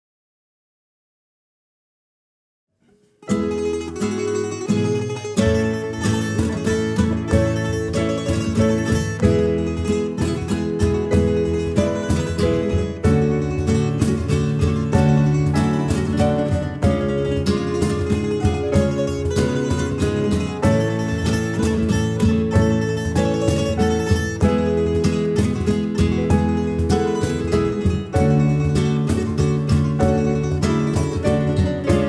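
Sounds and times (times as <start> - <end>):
plucked acoustic guitar: 2.8 - 32.0
piano: 3.2 - 32.0
bass: 3.3 - 32.0
drums: 4.2 - 32.0.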